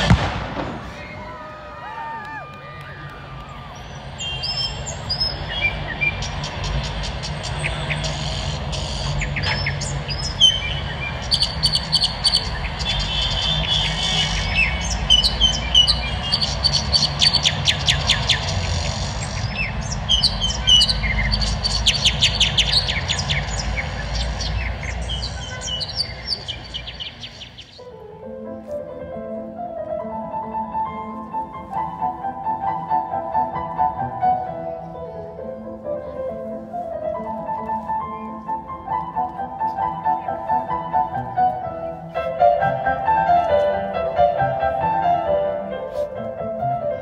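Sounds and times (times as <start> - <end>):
recorded birdsong over loudspeakers: 2.8 - 29.0, 30.8 - 45.5
low rumble: 3.0 - 27.8.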